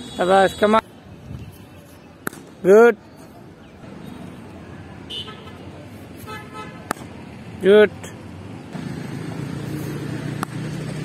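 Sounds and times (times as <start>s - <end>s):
outdoor background noise: 0.0s - 11.0s
vehicle engine droning: 8.4s - 11.0s.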